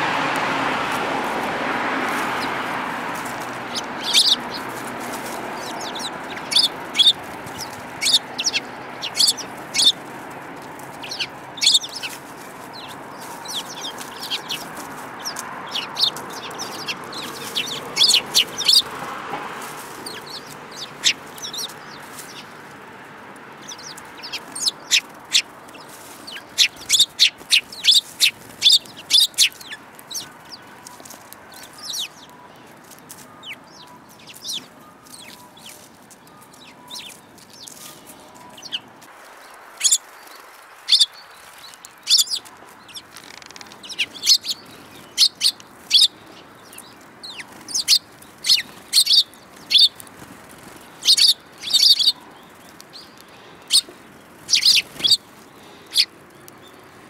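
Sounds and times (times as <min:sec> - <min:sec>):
sparrows chirping: 0:00.0 - 0:57.0.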